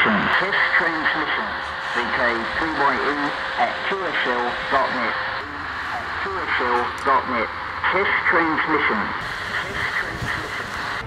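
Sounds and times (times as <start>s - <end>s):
low hum: 0.0s - 11.0s
radio hiss and static: 0.0s - 11.0s
voice message over radio: 0.0s - 11.0s.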